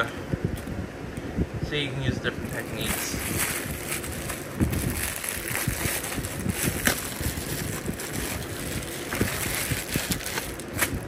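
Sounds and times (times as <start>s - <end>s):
plastic bubble mailer crinkling: 2.4s - 11.0s.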